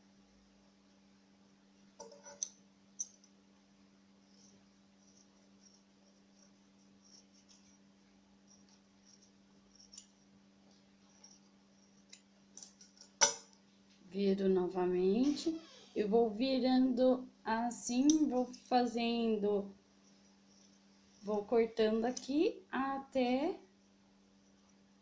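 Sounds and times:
faint steady hum: 0.0 - 25.0.

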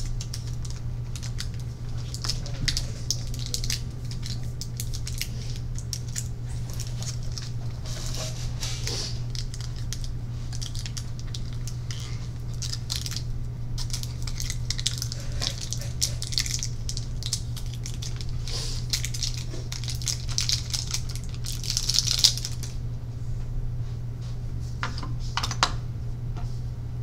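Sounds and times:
scratching and rustling: 0.0 - 22.7
steady low hum: 0.0 - 27.0.

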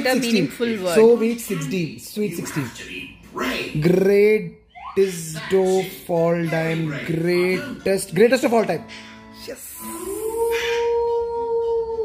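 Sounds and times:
person singing long note: 9.8 - 12.0.

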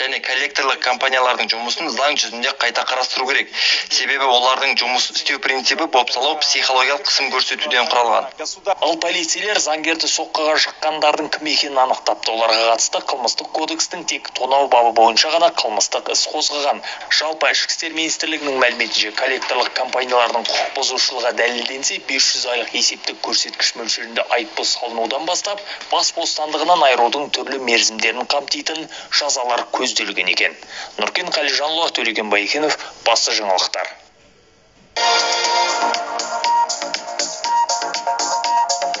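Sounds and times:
news voice-over speaking: 0.0 - 34.0
bright synth notes: 35.0 - 39.0
fast percussive beat: 35.0 - 39.0.

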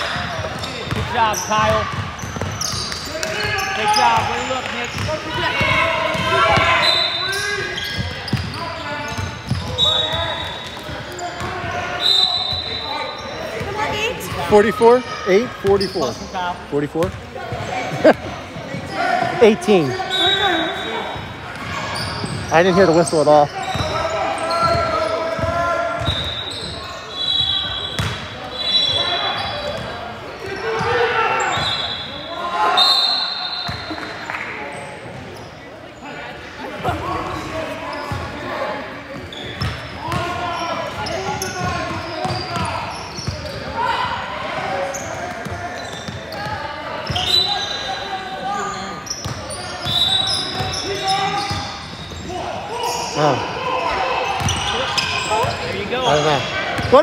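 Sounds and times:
shoe squeaks: 0.2 - 16.9, 18.8 - 34.1, 39.2 - 44.0, 44.6 - 57.0
basketball bouncing: 0.4 - 3.3, 23.7 - 24.0.

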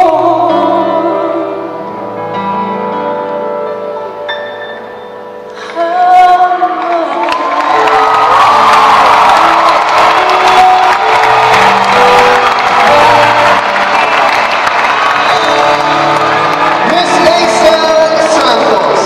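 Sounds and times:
audience cheering and whooping: 7.2 - 19.0.

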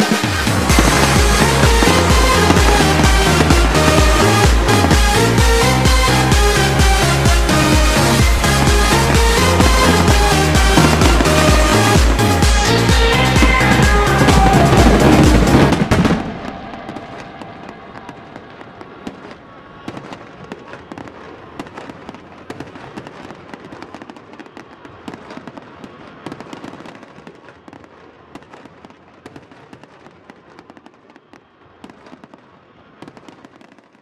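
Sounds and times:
fireworks crackling and popping: 0.0 - 34.0.

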